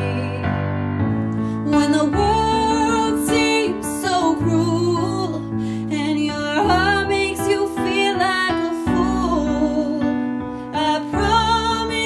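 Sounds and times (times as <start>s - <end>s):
woman singing a slow ballad: 0.0s - 0.7s, 1.4s - 12.0s
piano accompaniment: 0.0s - 12.0s.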